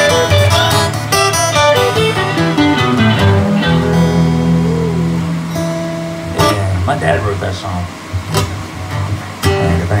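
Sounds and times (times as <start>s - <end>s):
acoustic guitar strums: 0.0s - 9.8s.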